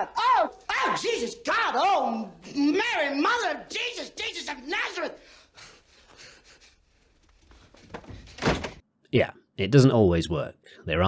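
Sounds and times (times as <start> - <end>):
man screaming: 0.0 - 5.2
loud thump: 7.9 - 8.8.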